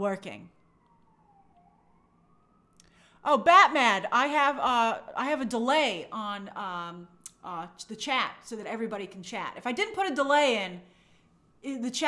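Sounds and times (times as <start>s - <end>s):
faint siren wailing: 0.0s - 7.2s.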